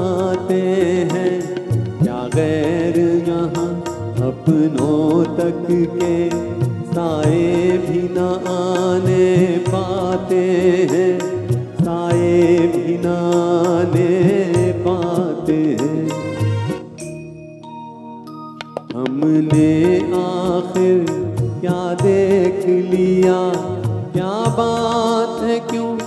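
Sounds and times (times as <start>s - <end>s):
man singing: 0.0s - 17.0s, 18.9s - 26.0s
steady drum beat: 0.0s - 17.0s, 18.8s - 26.0s
keyboard: 0.0s - 26.0s.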